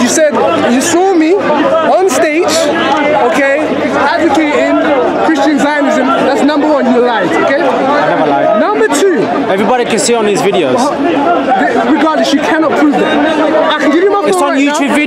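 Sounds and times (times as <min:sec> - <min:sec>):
men talking over one another: 0:00.0 - 0:15.0.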